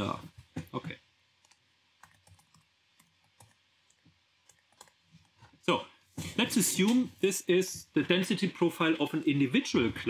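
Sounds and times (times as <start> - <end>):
keyboard typing clicks: 1.4 - 5.0.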